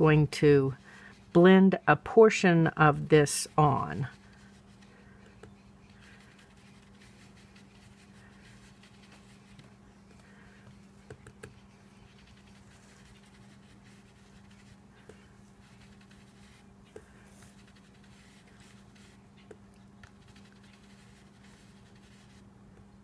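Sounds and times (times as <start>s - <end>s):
steady low hum: 0.0s - 23.0s
brush swishing on paper: 0.7s - 1.4s, 3.0s - 22.5s.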